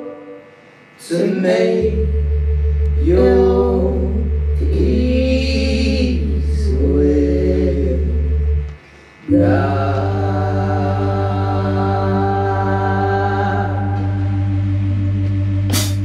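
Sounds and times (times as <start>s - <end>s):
man and woman singing in harmony: 0.0s - 2.1s, 3.0s - 8.4s, 9.2s - 14.6s
low keyboard drone: 0.0s - 16.0s.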